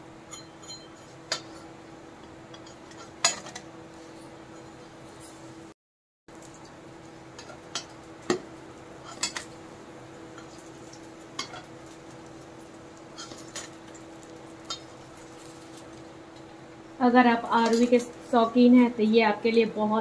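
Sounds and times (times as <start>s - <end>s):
low steady hum: 6.3s - 20.0s.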